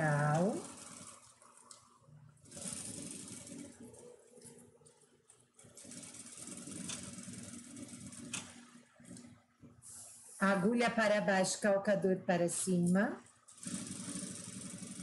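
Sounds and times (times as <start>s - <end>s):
sewing machine stitching: 0.0s - 4.9s, 5.6s - 9.3s, 13.5s - 15.0s.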